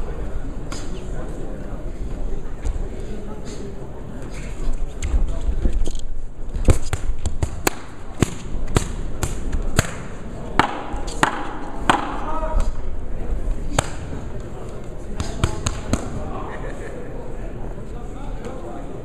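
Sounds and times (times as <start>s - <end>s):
murmur of arena voices: 0.0s - 19.0s.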